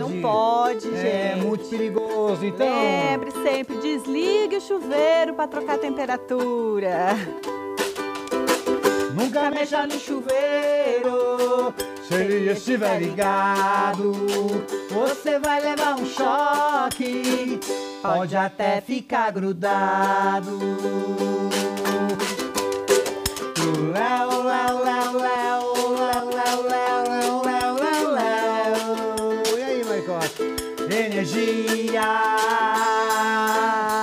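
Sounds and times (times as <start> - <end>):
ukulele strummed in chords: 0.0 - 34.0.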